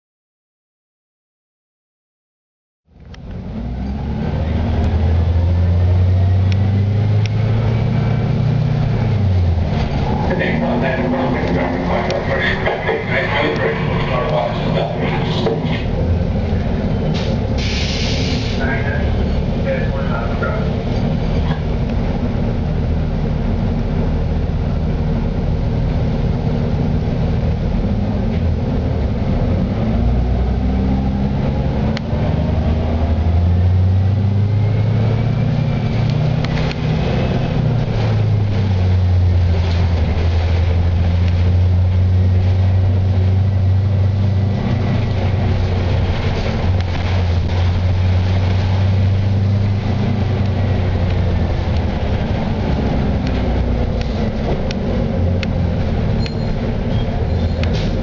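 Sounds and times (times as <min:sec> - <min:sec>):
bus engine: 0:02.9 - 0:58.0
drivetrain whine: 0:02.9 - 0:58.0
short air hiss: 0:17.2 - 0:18.6.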